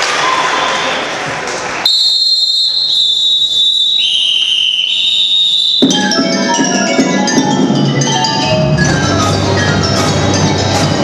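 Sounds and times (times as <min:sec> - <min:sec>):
high held percussion tones: 0:01.9 - 0:11.0
struck mallet keyboard notes: 0:04.9 - 0:11.0.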